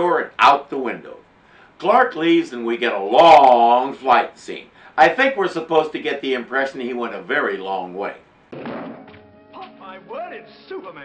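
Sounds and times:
man speaking: 0:00.0 - 0:01.2, 0:01.8 - 0:08.2
thump: 0:08.5 - 0:09.3
background music: 0:08.6 - 0:11.0.

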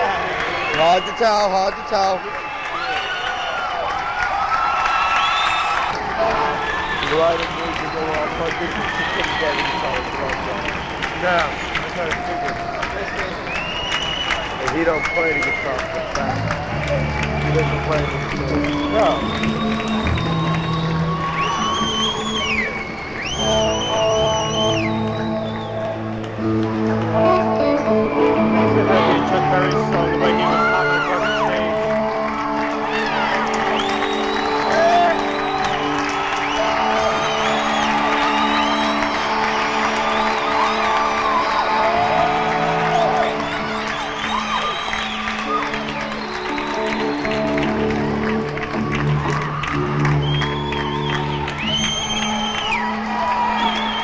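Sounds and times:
crowd noise: 0:00.0 - 0:54.0
high bending lead guitar line: 0:23.4 - 0:40.5
live rock band playing: 0:23.4 - 0:43.9.

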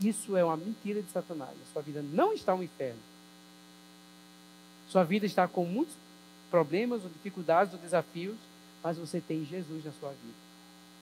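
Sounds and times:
man speaking: 0:00.0 - 0:03.0, 0:04.9 - 0:10.4
faint electrical mains hum: 0:00.0 - 0:11.0.

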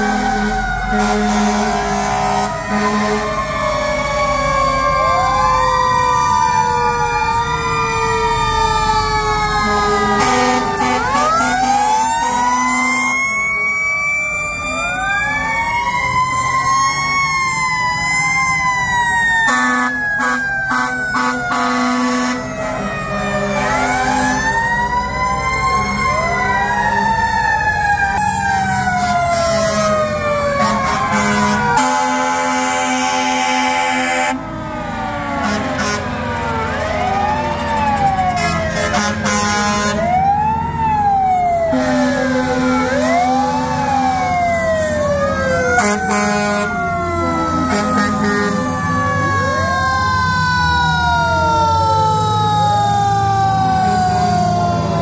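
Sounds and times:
fire engine sirens wailing: 0:00.0 - 0:55.0
low horn blasts: 0:00.1 - 0:03.5, 0:09.6 - 0:13.4, 0:19.5 - 0:24.3, 0:29.0 - 0:34.5, 0:35.3 - 0:36.6, 0:38.2 - 0:40.2, 0:41.7 - 0:43.1, 0:45.7 - 0:48.8.

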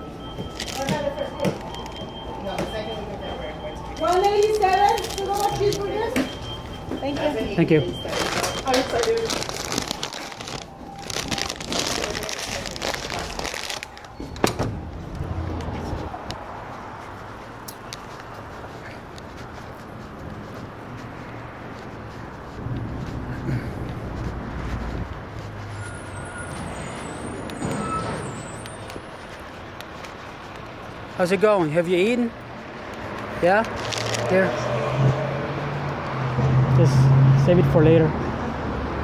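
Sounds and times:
passing vehicles: 0:00.0 - 0:39.0
paper bag crinkling: 0:00.5 - 0:02.0, 0:04.0 - 0:06.1, 0:08.0 - 0:14.4, 0:33.6 - 0:34.5.

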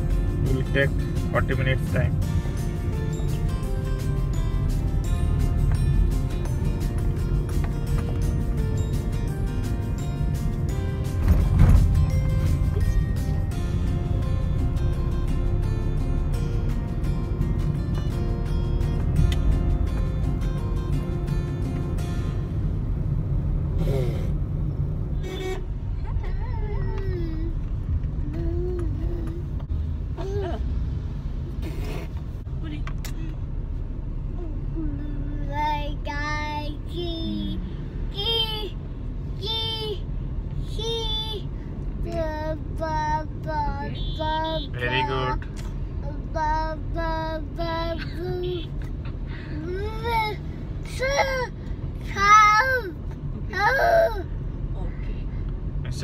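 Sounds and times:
background music: 0:00.0 - 0:23.0
car interior rumble: 0:00.0 - 0:56.0.

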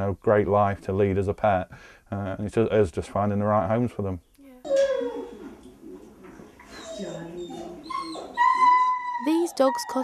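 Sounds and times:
dogs whining and whimpering: 0:04.6 - 0:10.0.

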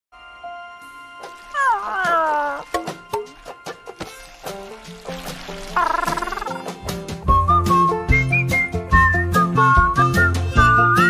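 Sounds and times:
soft background music: 0:00.2 - 0:11.0.

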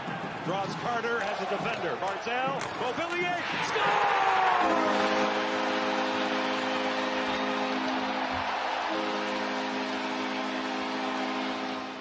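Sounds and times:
crowd noise: 0:00.0 - 0:12.0
goal horn chord: 0:04.5 - 0:12.0.

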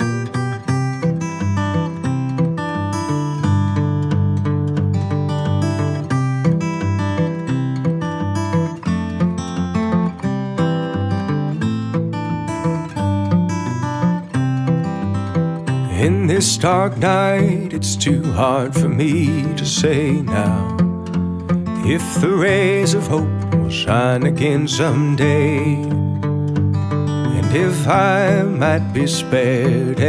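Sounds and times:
acoustic guitar strumming and picking: 0:00.0 - 0:30.0.

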